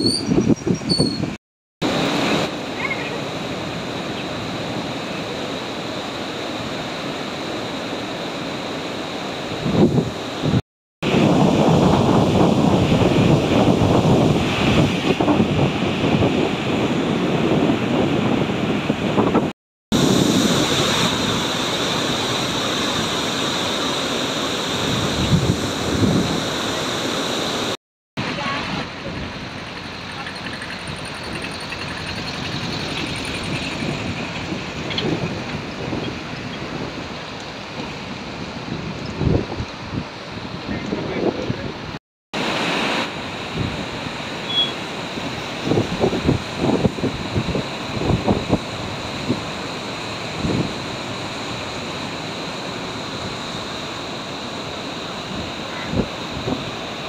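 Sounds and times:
roar of rushing floodwater: 1.8 - 57.0
wind buffeting microphone: 9.5 - 21.5, 24.8 - 26.6, 28.4 - 37.2, 37.8 - 42.0, 45.2 - 51.3.

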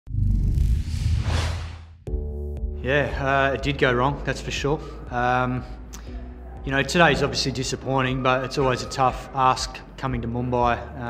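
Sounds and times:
deep rumble: 0.0 - 3.2.

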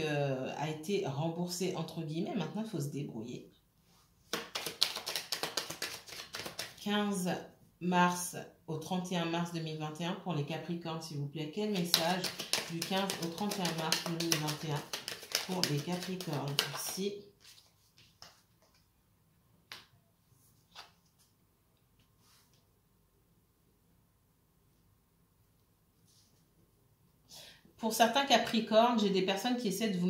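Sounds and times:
cards being shuffled: 4.3 - 6.8, 11.7 - 18.9, 20.6 - 21.3.

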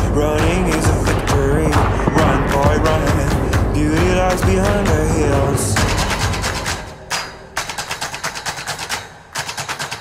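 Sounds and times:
rapid drum roll: 0.4 - 6.7.

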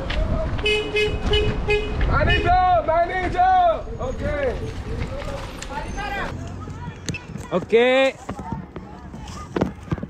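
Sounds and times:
people talking and calling out: 1.9 - 10.0
low background murmur: 4.7 - 10.0.

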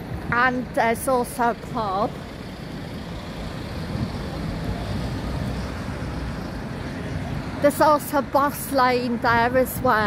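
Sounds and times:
bus engine rumble driving past: 0.0 - 10.0
street traffic: 0.0 - 10.0.

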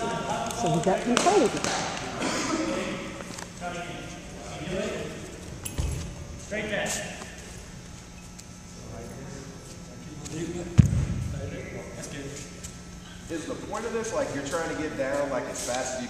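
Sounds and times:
indistinct talk in echoing hall: 0.0 - 16.0.

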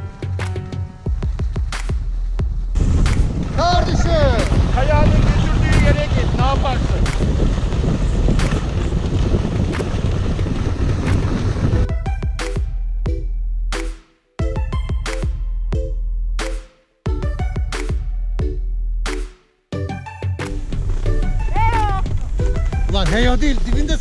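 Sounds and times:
background music: 0.0 - 6.5, 11.7 - 24.0
wind buffeting microphone: 2.2 - 12.8
person shouting: 21.4 - 22.1.

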